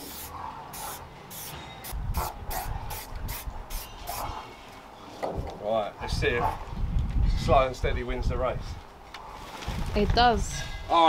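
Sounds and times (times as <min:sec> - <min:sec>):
spray paint can hissing bursts: 0:00.0 - 0:04.2.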